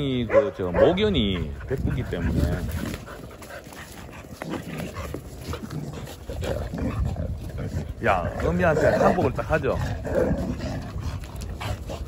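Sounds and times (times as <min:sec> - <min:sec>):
dogs play-fighting vocal sounds: 0:00.8 - 0:12.0.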